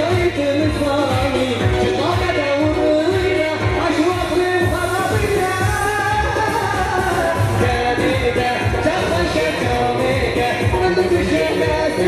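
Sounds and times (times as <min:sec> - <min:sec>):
amplified dance music: 0:00.0 - 0:12.0
man singing into a microphone: 0:00.0 - 0:12.0
steady drum beat: 0:00.0 - 0:12.0.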